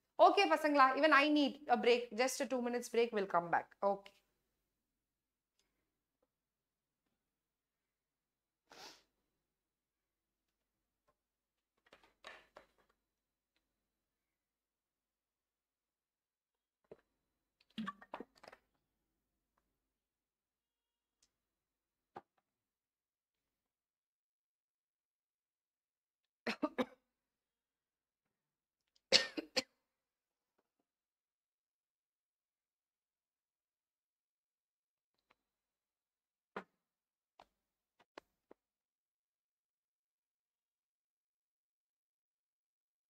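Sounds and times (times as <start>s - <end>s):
person coughing: 29.1s - 29.7s.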